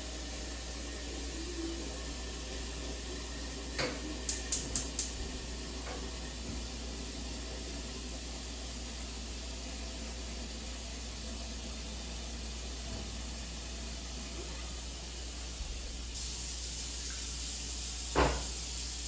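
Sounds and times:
faucet running into sink: 15.6 - 19.0.

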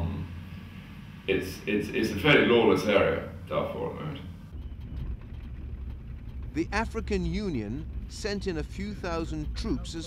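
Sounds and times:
vehicle driving on dirt: 4.4 - 10.0.

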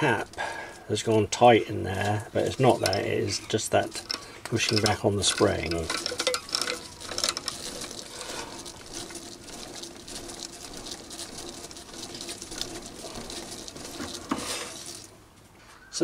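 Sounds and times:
fast rattle of clicks: 2.0 - 15.2
lathe humming: 2.4 - 15.2.

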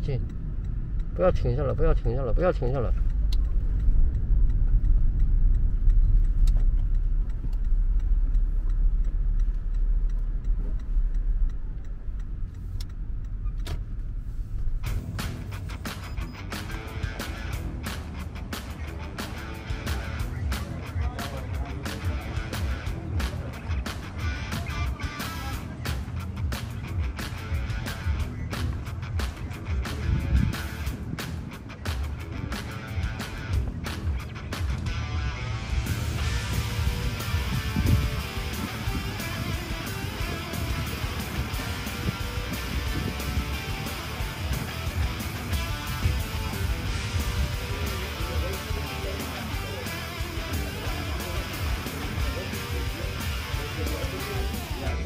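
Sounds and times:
road noise inside car: 0.0 - 20.4
strummed guitar music with beat: 14.4 - 55.0.

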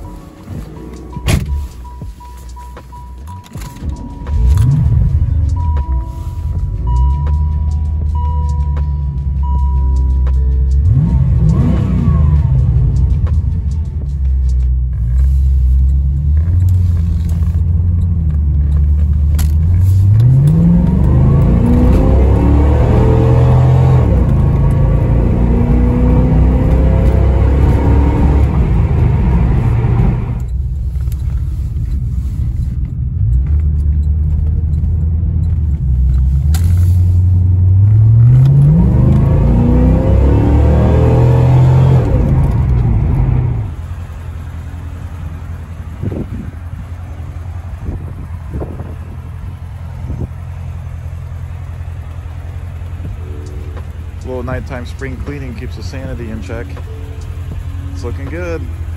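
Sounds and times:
car engine accelerating: 0.0 - 58.9.

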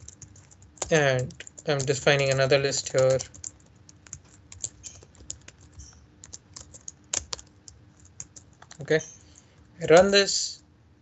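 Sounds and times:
typing on computer keyboard: 0.0 - 10.1.

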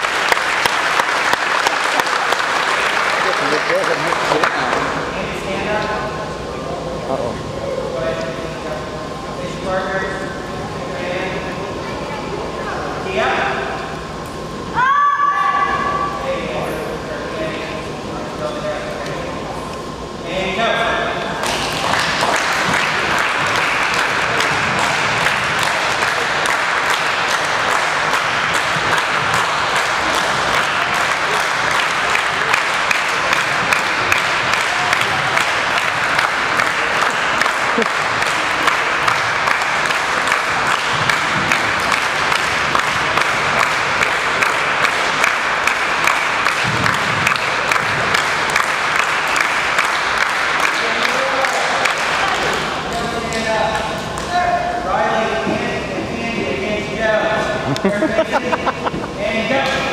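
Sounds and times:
group clapping: 0.0 - 5.0, 21.4 - 54.5.

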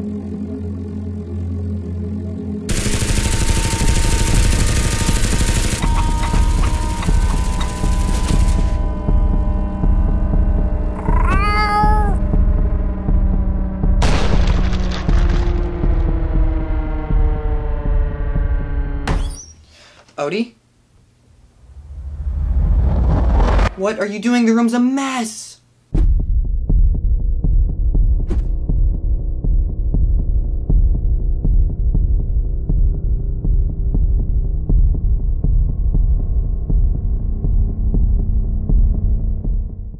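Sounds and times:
low drone: 0.0 - 11.2
low throbbing hum: 0.0 - 11.3, 12.1 - 19.0, 26.2 - 39.9
cat meowing: 10.9 - 12.2.

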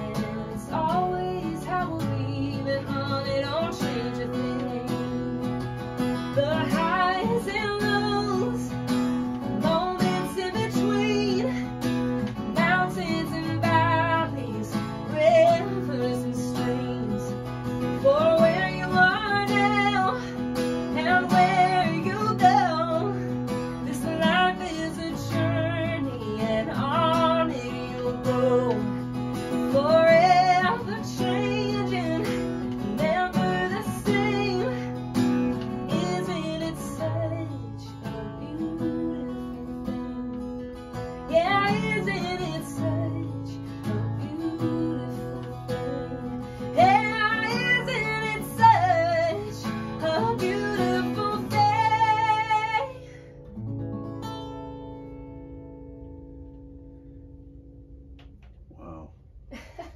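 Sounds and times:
woman singing: 0.0 - 53.3
strummed acoustic guitar: 0.0 - 58.6.

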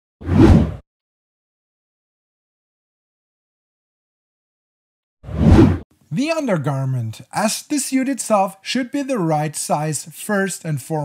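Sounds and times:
whoosh sound effect: 5.3 - 5.8.

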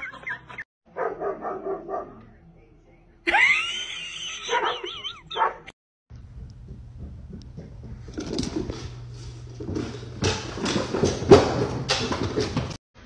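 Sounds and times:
dog yipping: 4.4 - 5.7.

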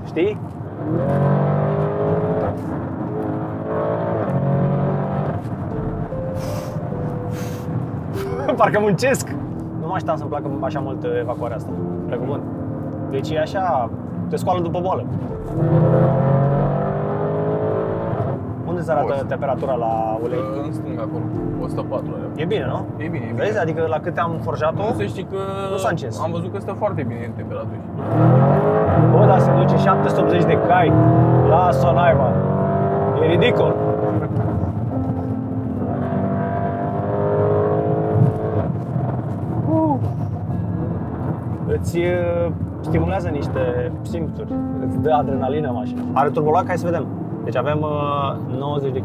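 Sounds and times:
car engine accelerating: 0.0 - 49.0
road rumble: 0.0 - 49.0.

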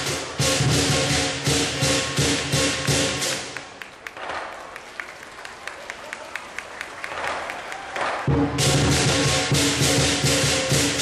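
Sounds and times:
percussion band playing: 0.0 - 4.4, 8.2 - 11.0.

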